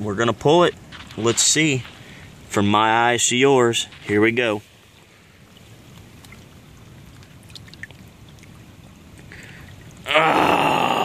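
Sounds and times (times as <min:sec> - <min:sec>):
water sloshing and trickling: 0:00.0 - 0:10.1.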